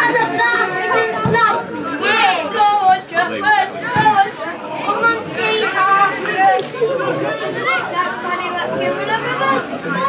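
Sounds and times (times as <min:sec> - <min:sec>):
children's voices: 0:00.0 - 0:10.0
people talking over one another: 0:00.0 - 0:10.0.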